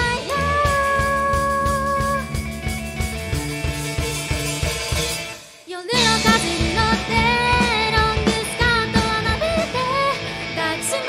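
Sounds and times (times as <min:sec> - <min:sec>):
female singer: 0:00.0 - 0:02.4, 0:05.7 - 0:11.0
drum kit: 0:00.0 - 0:11.0
electric guitars: 0:00.0 - 0:11.0.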